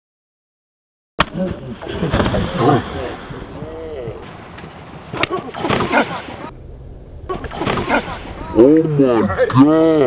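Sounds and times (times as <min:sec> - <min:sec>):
people laughing: 0:01.4 - 0:03.0, 0:05.2 - 0:06.5, 0:07.3 - 0:10.0.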